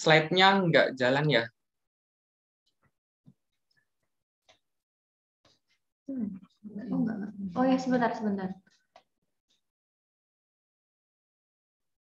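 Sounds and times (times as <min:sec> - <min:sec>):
person speaking: 0:06.1 - 0:08.6.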